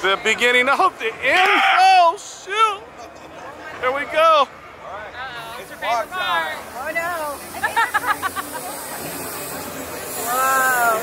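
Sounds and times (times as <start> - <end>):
people calling out: 1.2 - 2.2.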